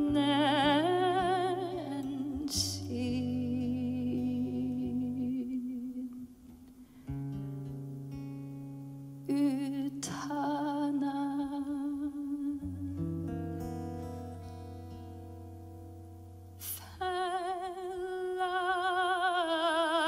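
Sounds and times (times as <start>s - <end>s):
woman singing with vibrato: 0.0s - 6.4s, 9.3s - 13.3s, 16.6s - 20.0s
plucked guitar chords: 0.0s - 16.6s.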